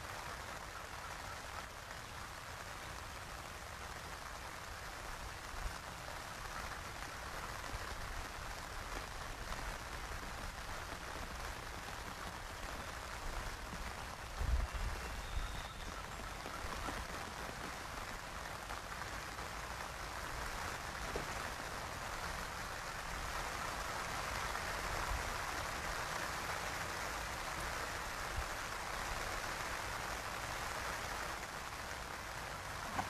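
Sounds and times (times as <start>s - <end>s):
outdoor ambient hiss: 0.0s - 33.0s.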